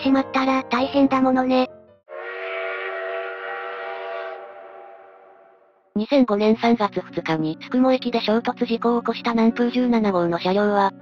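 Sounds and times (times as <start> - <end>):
train whistle blast: 2.1 - 5.8.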